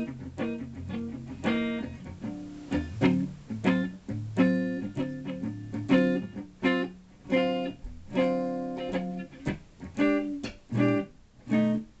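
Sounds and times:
electric guitar blues chords: 0.0 - 12.0.

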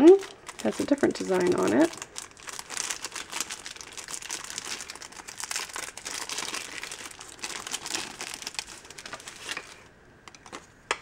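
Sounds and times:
plastic wrapper crinkling: 0.0 - 10.7.

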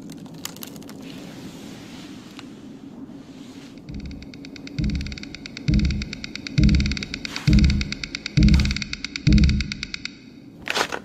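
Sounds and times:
deep thumps: 3.9 - 10.0
fast even clicking rhythm: 3.9 - 10.2.

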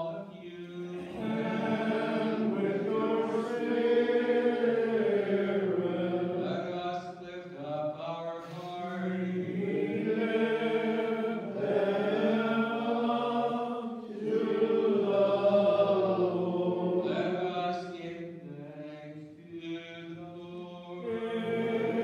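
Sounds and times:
choir chanting a cappella: 0.0 - 22.0.

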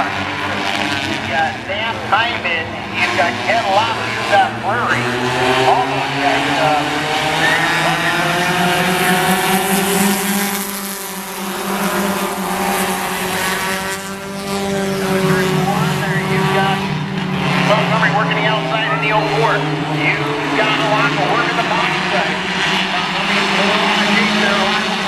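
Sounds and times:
race car engines droning: 0.0 - 25.0.

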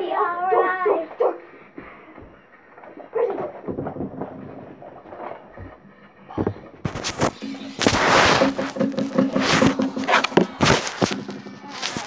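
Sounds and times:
faint voices: 0.0 - 12.0
rustling: 2.3 - 12.0.

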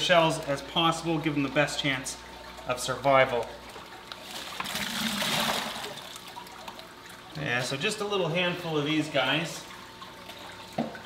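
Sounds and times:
water pouring and splashing: 0.0 - 11.0.

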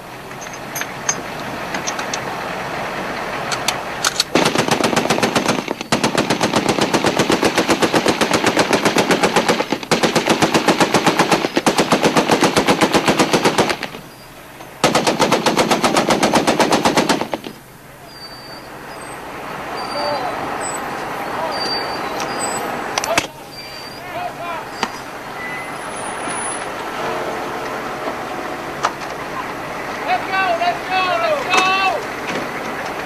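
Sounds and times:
vehicle rumble: 0.0 - 33.0
wind: 0.0 - 33.0
heavy machine gun bursts: 3.3 - 18.6.

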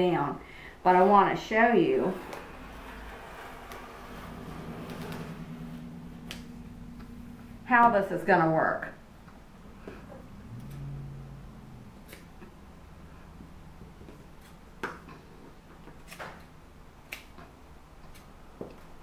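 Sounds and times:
brief low hum: 4.1 - 8.2, 8.9 - 14.0.

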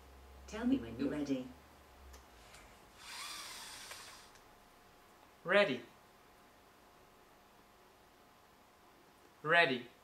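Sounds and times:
robotic arm joints whirring: 3.0 - 4.4.

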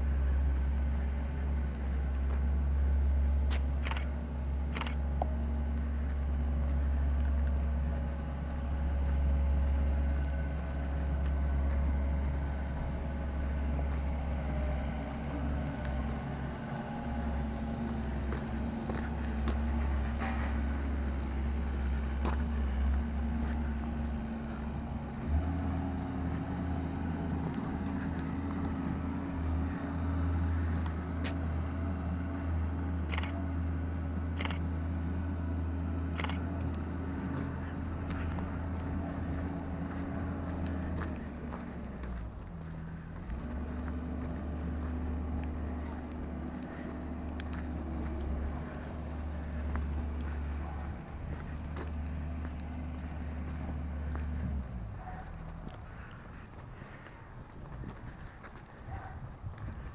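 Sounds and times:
vehicle rumbling on dirt road: 0.0 - 59.9.

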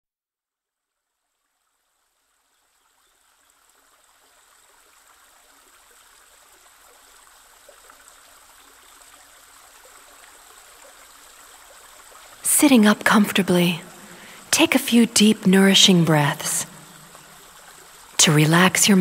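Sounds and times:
stream running water: 0.9 - 19.0.

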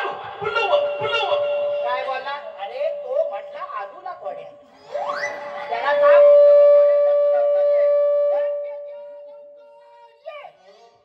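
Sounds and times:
loud held note: 0.7 - 4.1.

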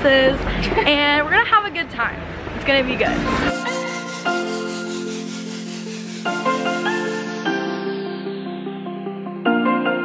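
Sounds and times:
music of sustained chords: 3.1 - 10.0.

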